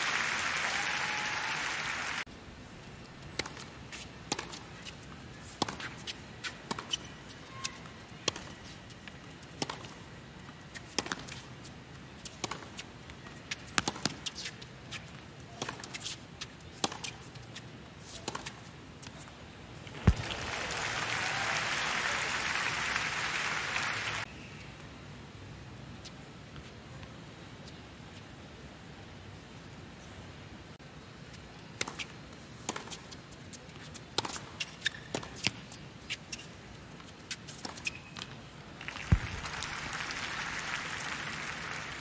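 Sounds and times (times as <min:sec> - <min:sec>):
crowd applauding: 0:00.0 - 0:02.3, 0:20.0 - 0:24.3, 0:38.8 - 0:42.0
tennis ball strikes and bounces: 0:03.4 - 0:10.0, 0:13.5 - 0:14.6, 0:15.6 - 0:19.2, 0:20.0 - 0:21.0, 0:31.7 - 0:36.5.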